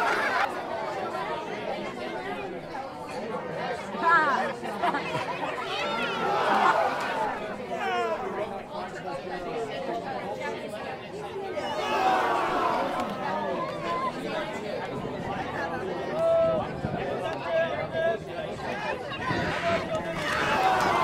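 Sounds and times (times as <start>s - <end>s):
children chattering: 0.0s - 21.0s.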